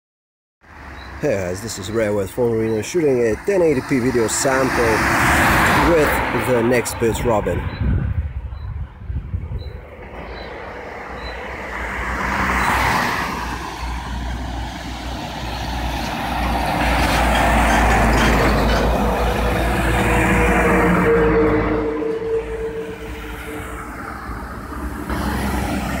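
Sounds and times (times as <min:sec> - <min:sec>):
heavy trucks passing: 0:00.6 - 0:26.0
vehicle passing: 0:00.7 - 0:26.0.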